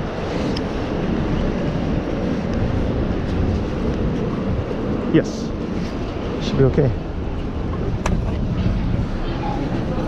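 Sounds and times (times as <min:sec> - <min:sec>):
low rumbling outdoor noise: 0:00.0 - 0:10.0.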